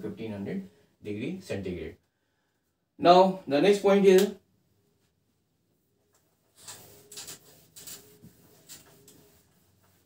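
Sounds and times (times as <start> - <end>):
duster scrubbing whiteboard: 5.8 - 10.0.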